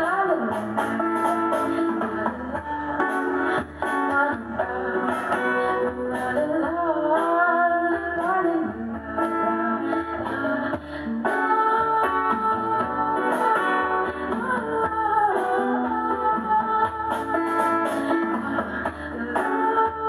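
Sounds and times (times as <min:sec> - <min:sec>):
person singing: 0:00.0 - 0:20.0
strummed acoustic guitar: 0:00.0 - 0:20.0.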